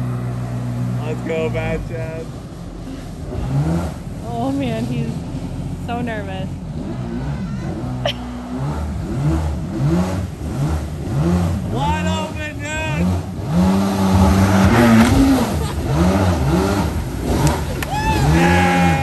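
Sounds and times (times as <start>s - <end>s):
boat engine revving: 0.0s - 19.0s.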